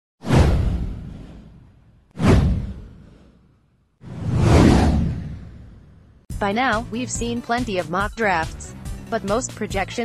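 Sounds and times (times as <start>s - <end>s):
whoosh sound effect: 0.2s - 6.1s
deep rumble: 0.3s - 3.4s, 4.0s - 6.3s.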